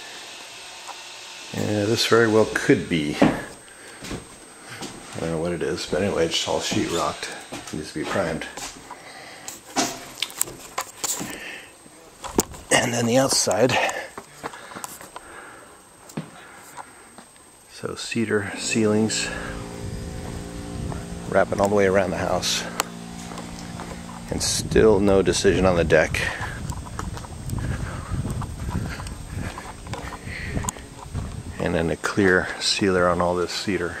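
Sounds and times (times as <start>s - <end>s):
low outdoor background: 0.0s - 34.0s
footsteps on dirt: 3.2s - 8.9s, 26.2s - 31.8s
footsteps on gravel: 26.2s - 31.6s.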